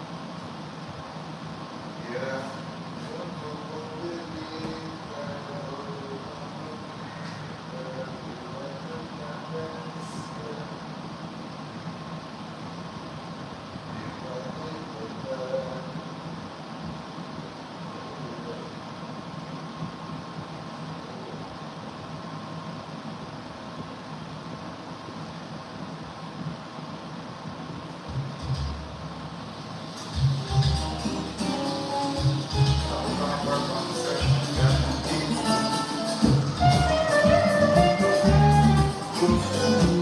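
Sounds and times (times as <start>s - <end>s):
music with low beats: 27.5s - 29.2s, 30.0s - 40.0s.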